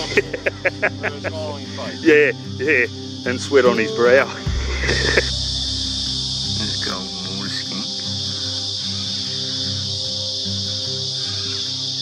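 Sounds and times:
man laughing: 0.0 - 2.9, 3.7 - 5.4.

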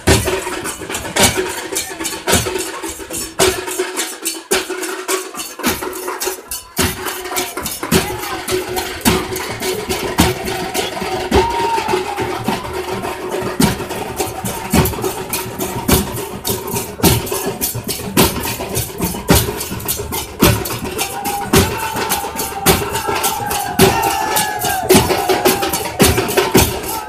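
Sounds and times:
large barrel drums: 0.0 - 27.0
stick-beaten drums: 0.0 - 27.0.

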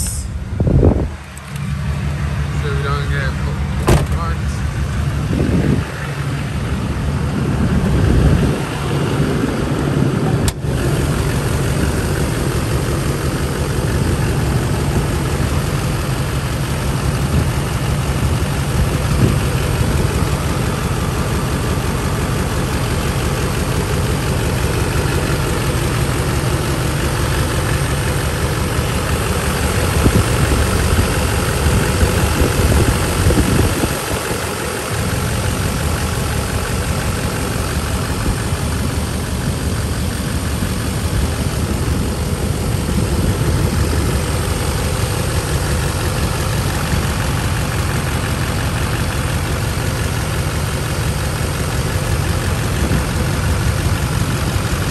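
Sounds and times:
diesel engine idling: 0.0 - 54.9.

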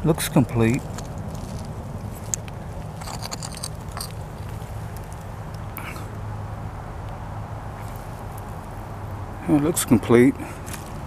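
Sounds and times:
hand scraping soil: 0.1 - 5.2.

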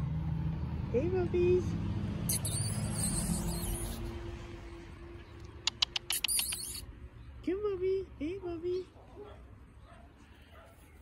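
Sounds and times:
lip kissing squeaks: 2.3 - 4.1, 5.5 - 6.9.

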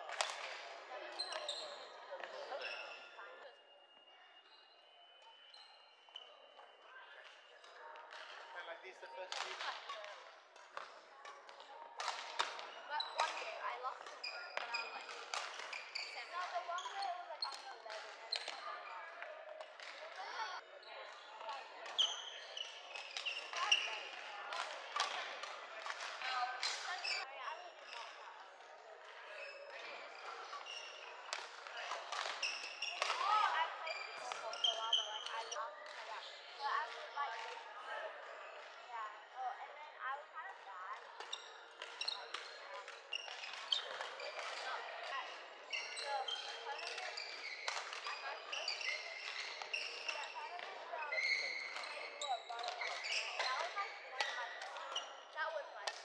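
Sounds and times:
background chatter: 0.0 - 56.0
racket hitting shuttlecock: 32.1 - 32.4.

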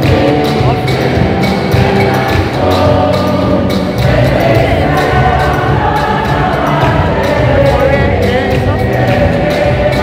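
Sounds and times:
choir singing a hymn: 0.0 - 10.0
steady percussion beat: 0.0 - 10.0.

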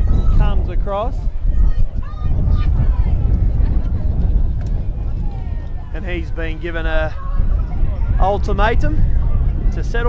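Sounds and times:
faint voices: 0.0 - 10.0
wind buffeting microphone: 0.0 - 10.0.

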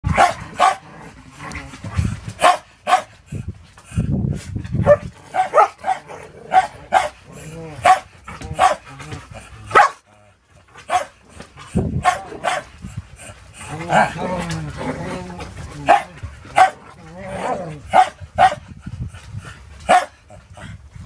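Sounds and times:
dogs barking and yipping: 0.0 - 0.9, 2.2 - 3.2, 4.8 - 10.1, 10.8 - 18.8, 19.8 - 20.2
dogs growling: 0.0 - 2.4, 4.7 - 20.9.

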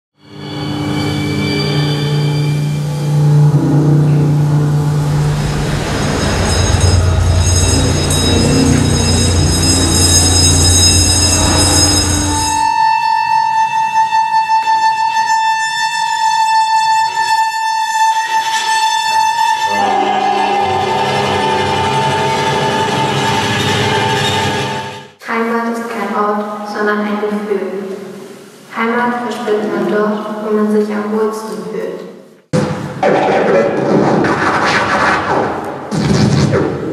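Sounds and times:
high pulsing held tone: 0.3 - 13.8, 19.6 - 25.2
bass drum rubbed drone: 1.6 - 12.6, 19.6 - 25.1
chamber ensemble held chords: 19.6 - 24.8.

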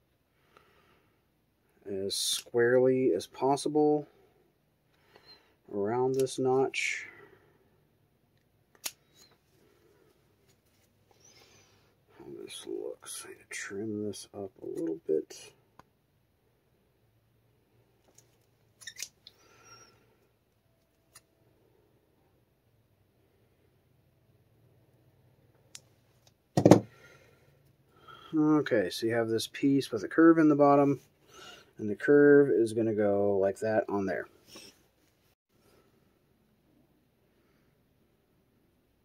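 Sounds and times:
scissors snipping foam: 8.7 - 9.0.

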